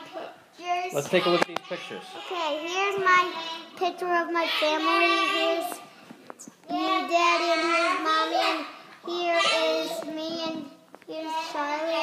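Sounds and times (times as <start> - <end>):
young child sing-songing: 0.6 - 6.0, 6.6 - 12.0.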